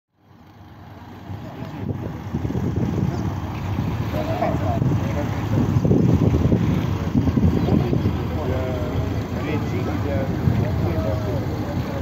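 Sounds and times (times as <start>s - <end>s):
ferry engines rumbling: 0.1s - 12.0s.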